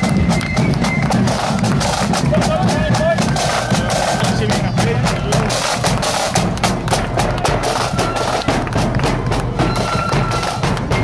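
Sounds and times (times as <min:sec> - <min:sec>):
drum strokes: 0:00.0 - 0:11.0
flute band playing: 0:00.0 - 0:11.0.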